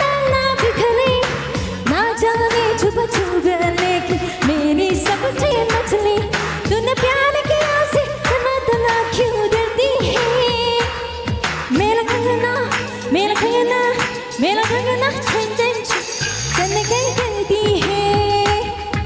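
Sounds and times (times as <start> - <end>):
music with dance beat: 0.0 - 19.0
woman singing into a microphone: 0.0 - 19.0.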